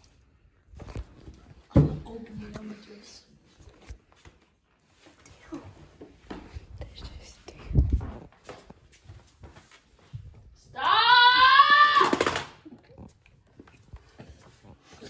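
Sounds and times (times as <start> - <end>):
soft shuffling: 0.0 - 10.8
person screaming: 10.7 - 12.4.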